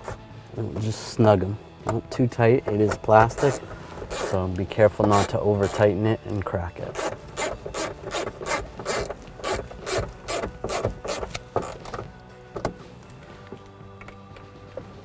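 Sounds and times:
hand ratchet clicking: 2.6s - 4.4s, 5.0s - 5.9s, 6.8s - 12.0s.

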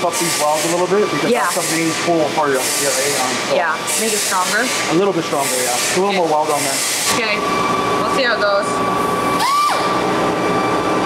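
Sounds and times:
pneumatic grinder whining on steel: 0.0s - 7.4s.

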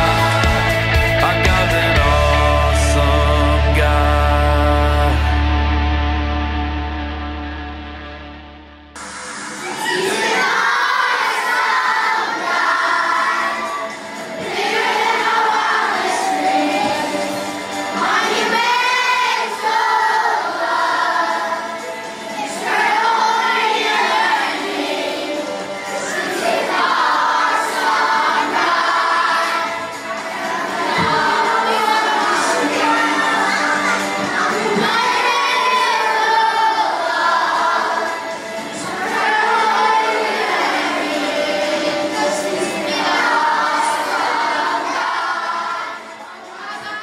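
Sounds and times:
children singing: 0.0s - 5.7s, 9.0s - 47.0s
music playing: 0.0s - 47.0s
children shouting: 9.4s - 47.0s.

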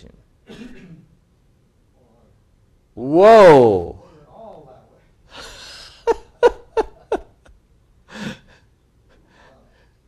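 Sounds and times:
man laughing: 5.3s - 7.5s
breathy gasp: 8.1s - 8.6s.

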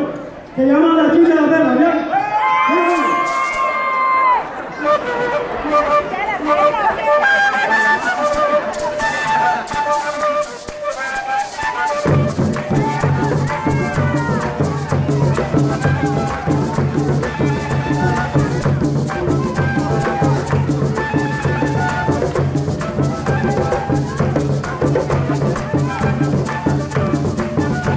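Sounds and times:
maraca shaking: 2.6s - 4.2s, 5.4s - 27.9s
cane flutes playing melody: 4.6s - 27.9s
drums: 8.1s - 27.9s.

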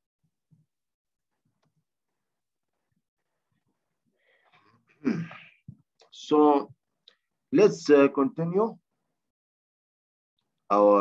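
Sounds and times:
person sneezing: 5.0s - 5.6s.

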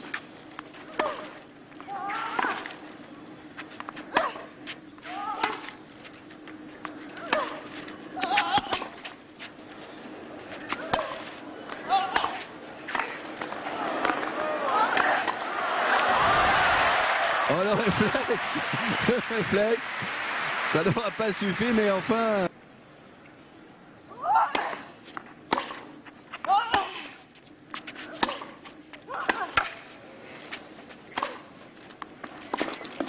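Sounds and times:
crowd noise: 10.0s - 22.5s
tennis ball hit by racket: 10.7s - 11.3s, 11.9s - 15.4s, 25.5s - 26.9s, 28.1s - 28.6s, 29.2s - 29.8s, 31.1s - 31.5s.

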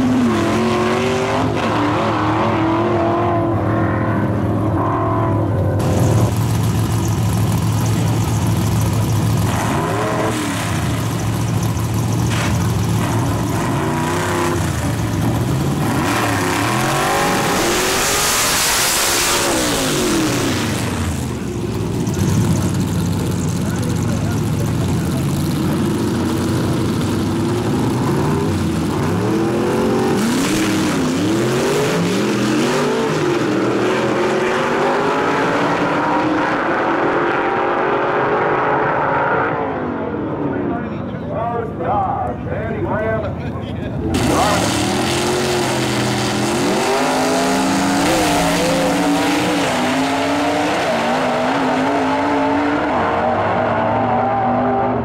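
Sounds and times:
drag car engines revving: 0.0s - 55.0s.

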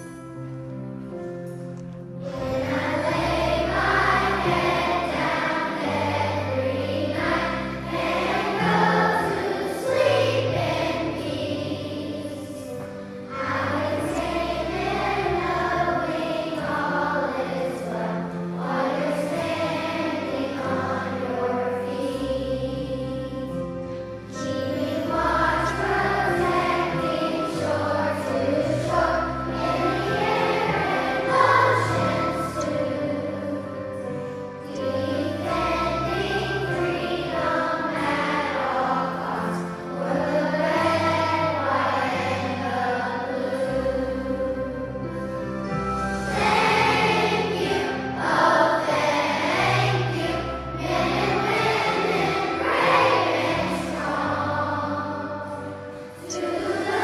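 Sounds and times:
children's choir singing: 0.0s - 57.0s
instrumental accompaniment: 0.0s - 57.0s.

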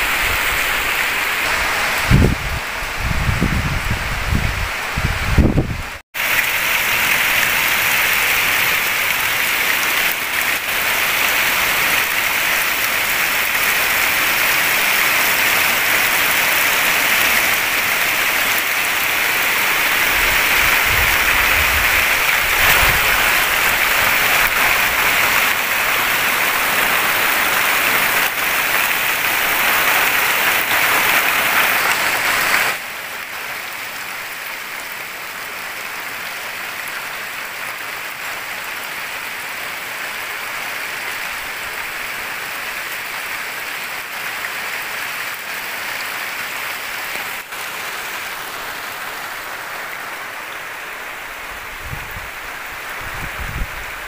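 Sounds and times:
heavy rain splashing on puddles: 0.0s - 54.0s.

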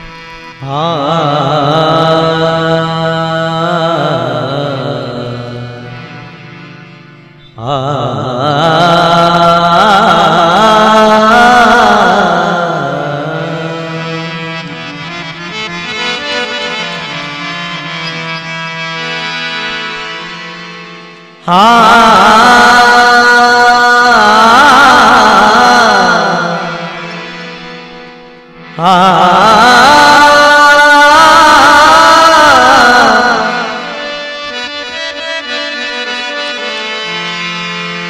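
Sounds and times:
harmonium chords: 0.0s - 38.0s
man singing devotional song: 0.0s - 38.0s.

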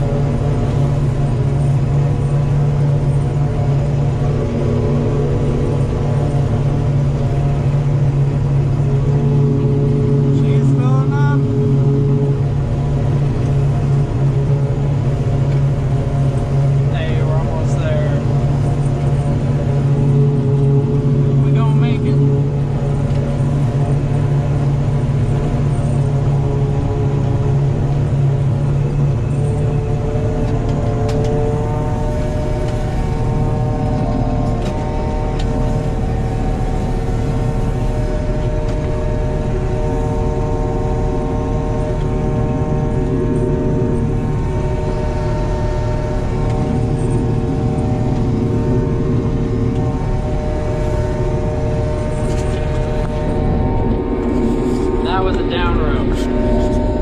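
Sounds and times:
forage harvester engine drone: 0.0s - 57.0s.

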